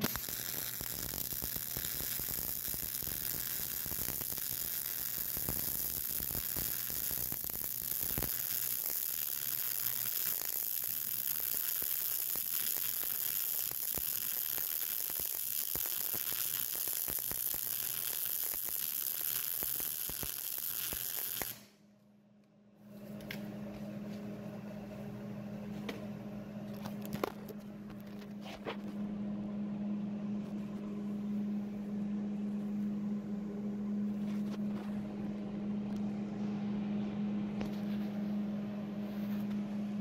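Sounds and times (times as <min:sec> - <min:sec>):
welding arc crackling sizzle: 0:00.0 - 0:21.8.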